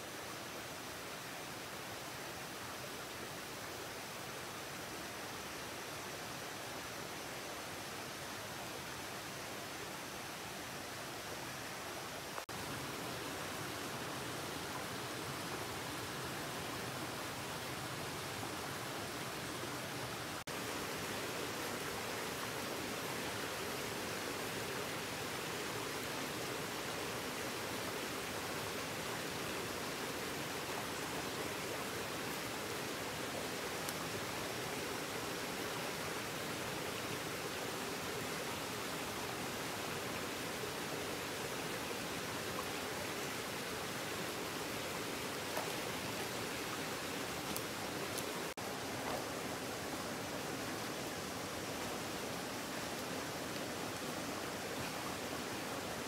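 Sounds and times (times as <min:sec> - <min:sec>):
stream flowing over rocks: 0:00.0 - 0:56.0.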